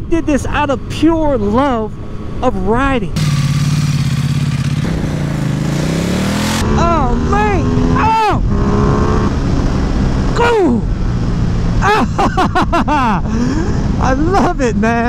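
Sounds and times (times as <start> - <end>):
motorcycle engine running: 2.8 - 11.7
wind noise: 3.9 - 15.0.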